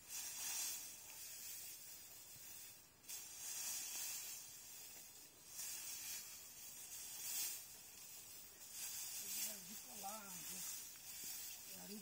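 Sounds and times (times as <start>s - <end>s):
high hiss: 0.0s - 12.0s.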